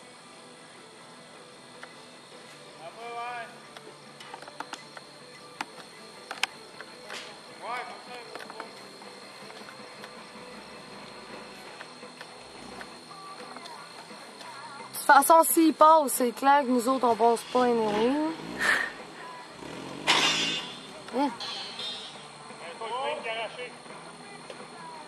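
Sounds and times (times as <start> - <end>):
steady high whine: 0.0 - 25.0
distant voices calling: 1.4 - 24.8.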